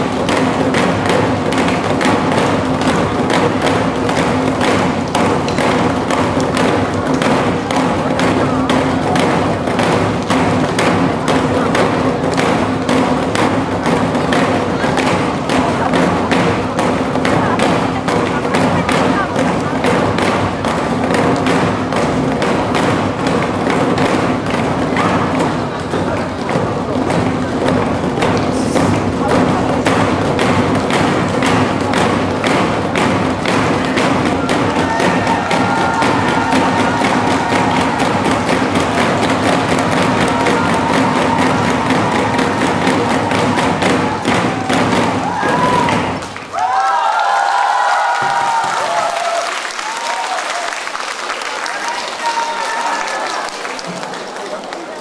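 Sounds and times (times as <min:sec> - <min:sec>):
barrel drums beaten: 0:00.0 - 0:46.9
voices and cheering: 0:00.0 - 0:55.0.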